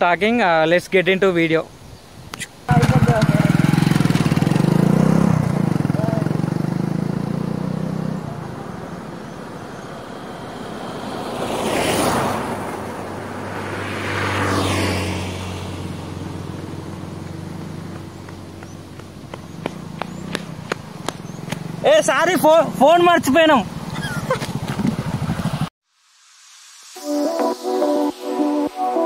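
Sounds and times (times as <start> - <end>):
motorcycle engine pulling away: 2.7 - 25.7
rising and falling whooshes: 3.6 - 17.3.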